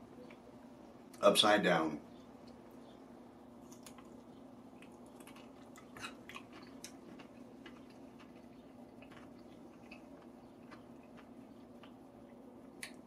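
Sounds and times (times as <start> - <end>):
person chewing with crunches: 3.5 - 13.0.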